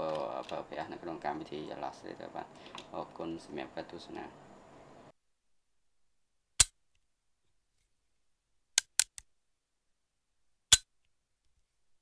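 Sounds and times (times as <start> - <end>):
computer mouse clicks: 8.8 - 9.2.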